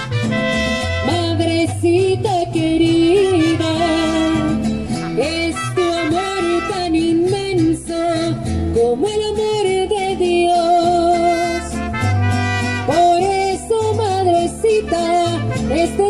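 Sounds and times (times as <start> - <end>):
trumpet melody: 0.0 - 1.7, 3.0 - 7.2, 11.2 - 13.6, 14.6 - 16.0
bass guitar: 0.0 - 16.0
strummed guitar: 0.0 - 16.0.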